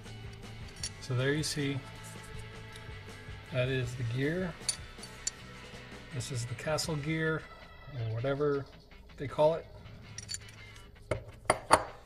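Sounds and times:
steel parts clinking: 0:00.3 - 0:01.2, 0:04.5 - 0:05.5, 0:10.1 - 0:10.9.

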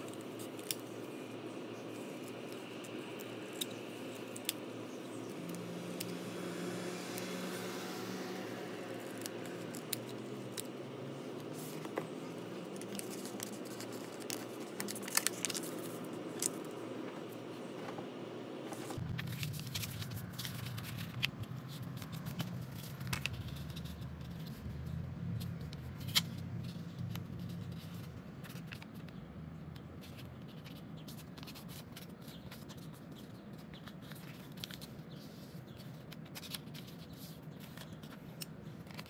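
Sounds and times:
scissors snipping paper: 0:00.0 - 0:01.3, 0:01.9 - 0:06.3, 0:08.7 - 0:16.6
paper being folded and creased: 0:00.0 - 0:29.2, 0:29.8 - 0:39.0
low background hum: 0:00.0 - 0:39.0.

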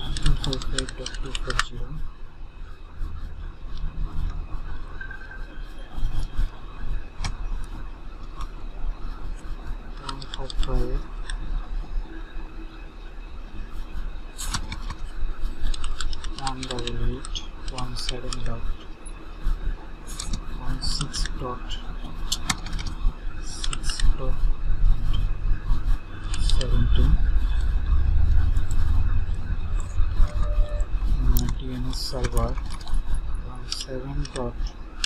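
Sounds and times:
computer keyboard typing: 0:00.0 - 0:01.8, 0:10.0 - 0:11.4, 0:14.4 - 0:18.8, 0:19.4 - 0:25.3, 0:26.2 - 0:34.6
man's low drawn-out voice: 0:00.0 - 0:02.0, 0:16.4 - 0:18.8, 0:20.1 - 0:22.0, 0:23.4 - 0:24.5, 0:26.2 - 0:28.3, 0:31.1 - 0:32.6, 0:33.4 - 0:34.7.

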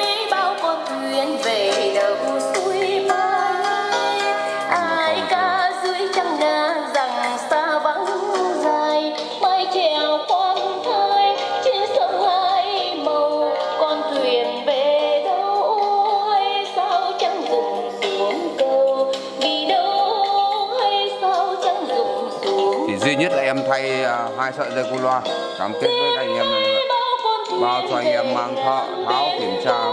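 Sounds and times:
song from small speakers: 0:00.0 - 0:29.9.

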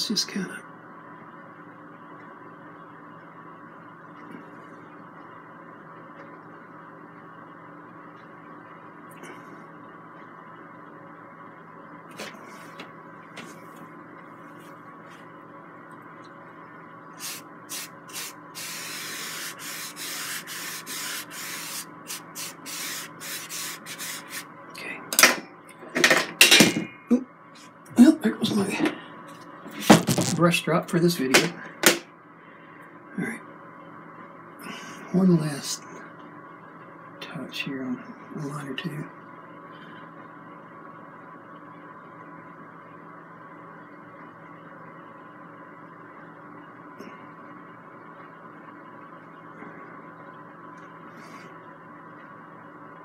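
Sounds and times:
steady low hum: 0:00.0 - 0:53.0
paintbrush scrubbing canvas: 0:17.2 - 0:24.5
knocks and rustles: 0:29.8 - 0:30.4.

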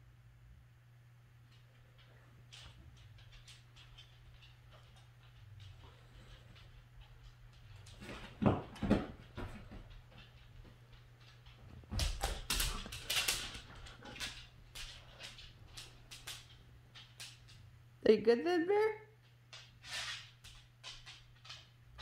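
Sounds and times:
dog thumps: 0:07.9 - 0:14.3.

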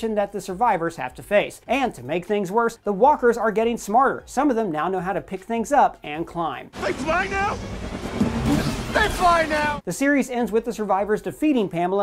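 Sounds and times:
man shouting: 0:06.8 - 0:07.6, 0:08.9 - 0:09.8
speeding vehicle engine: 0:06.8 - 0:09.8.

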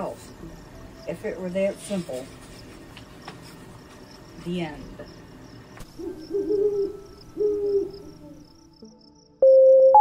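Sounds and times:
crickets chirping: 0:00.0 - 0:09.7
owl hooting: 0:06.0 - 0:08.6.

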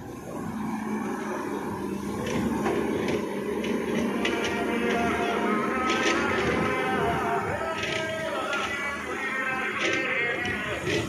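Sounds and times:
excavator diesel engine running: 0:00.0 - 0:11.0.

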